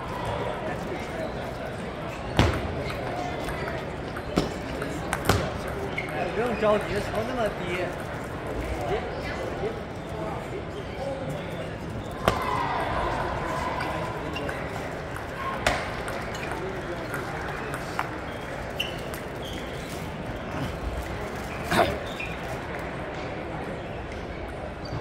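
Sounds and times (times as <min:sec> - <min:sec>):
murmur of voices: 0:00.0 - 0:25.0.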